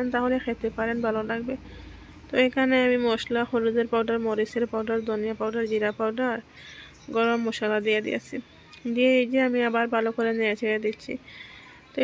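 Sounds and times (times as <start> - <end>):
woman talking: 0.0 - 12.0.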